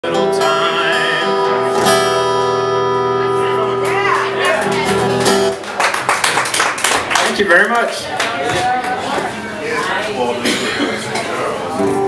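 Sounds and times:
man singing: 0.0s - 1.8s
strummed acoustic guitar: 0.0s - 5.6s, 10.4s - 12.0s.

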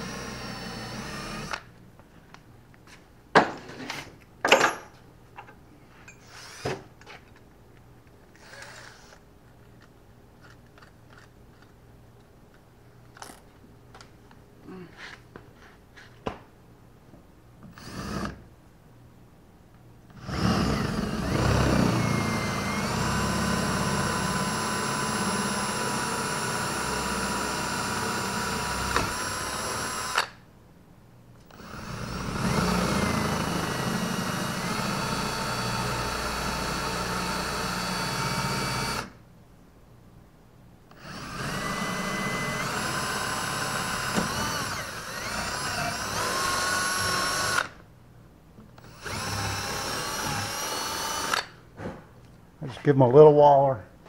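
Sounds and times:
cordless drill boring fiberglass: 0.0s - 1.6s, 8.4s - 9.1s, 20.2s - 30.3s, 31.5s - 39.1s, 41.0s - 47.7s, 48.8s - 51.5s.

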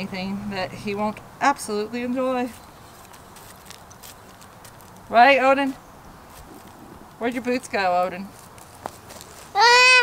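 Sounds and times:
quiet outdoor background: 0.0s - 10.0s.

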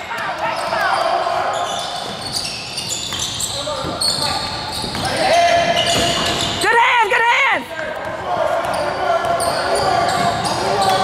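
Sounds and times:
voices echoing in hall: 0.0s - 11.0s
sneaker squeaks on hardwood: 0.3s - 6.8s, 8.6s - 11.0s.

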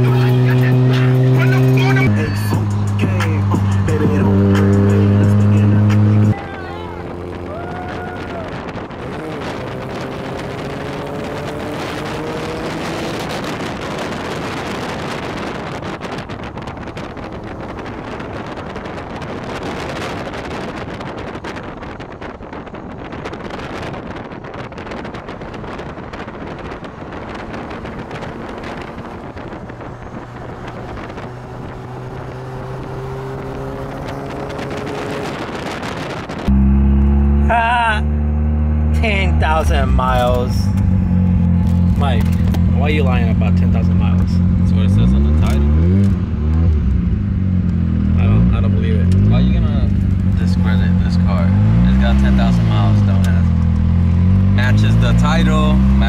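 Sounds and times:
car engines accelerating: 0.0s - 56.0s
road and wind noise: 0.0s - 56.0s.

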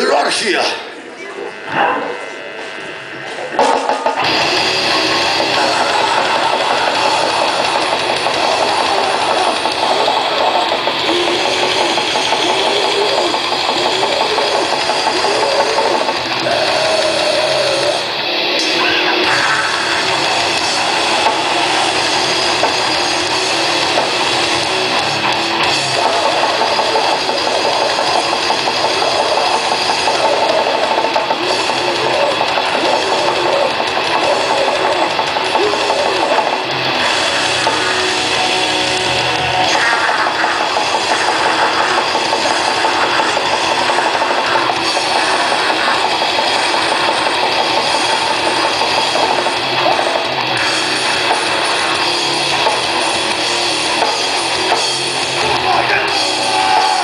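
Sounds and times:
distorted electric guitar: 0.0s - 57.0s
drums: 0.0s - 57.0s.

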